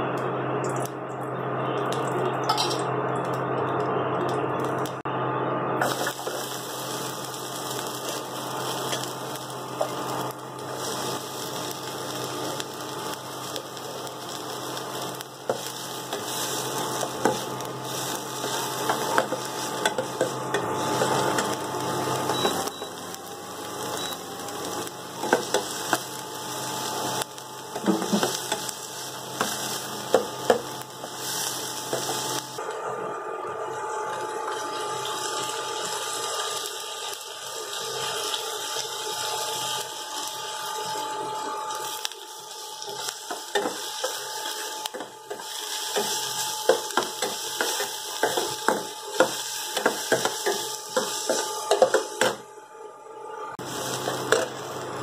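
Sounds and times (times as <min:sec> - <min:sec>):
onions sizzling in oil: 0:05.8 - 0:32.6, 0:33.8 - 0:52.4, 0:53.6 - 0:55.0.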